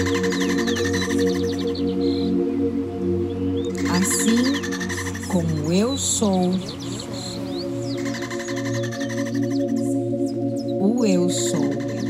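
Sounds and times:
soft drone tones: 0.0 - 12.0.

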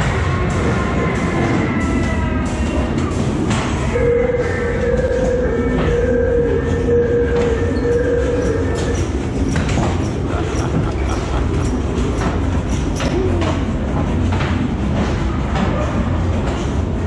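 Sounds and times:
ride car wheels rumbling on track: 0.0 - 17.0.

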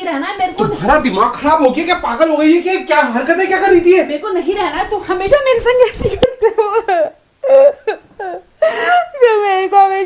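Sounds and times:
woman crying: 5.8 - 9.8.

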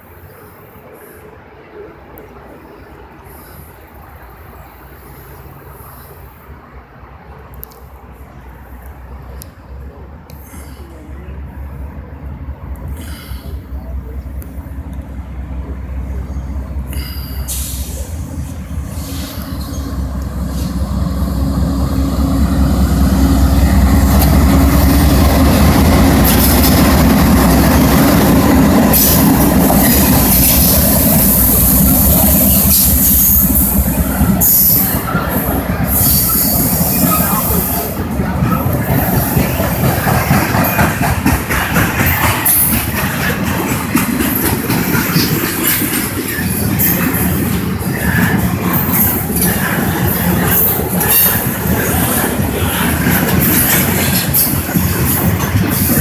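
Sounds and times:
diesel locomotive engine drone: 0.0 - 56.0
train wheels rumbling on rails: 0.0 - 56.0.

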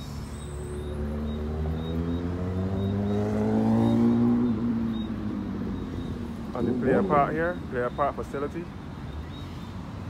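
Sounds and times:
vehicle engine accelerating past: 0.7 - 5.6.

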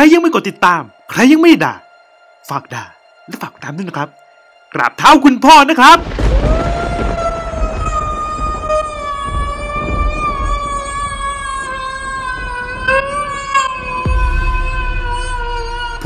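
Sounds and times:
low rumble: 6.0 - 12.9.

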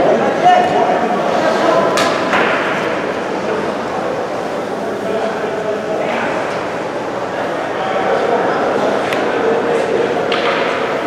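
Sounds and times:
murmur of crowd and voices: 0.0 - 11.0.

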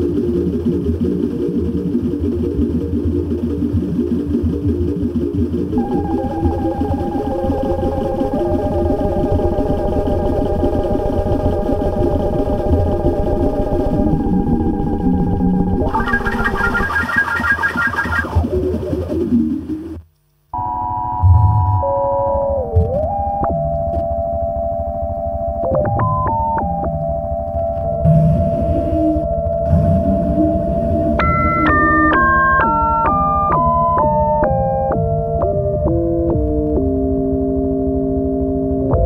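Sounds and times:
low rumble: 0.0 - 17.0, 27.1 - 33.3
electronic techno music: 0.0 - 20.0, 28.0 - 37.1
low pulsing throb: 0.0 - 20.0, 24.4 - 39.0
synth tone sweeping down: 0.0 - 20.0, 24.6 - 39.0
held synthesizer sine tones: 0.0 - 39.0.

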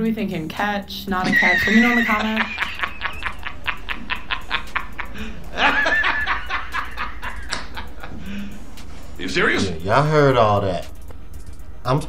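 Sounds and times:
man laughing: 1.2 - 8.5.

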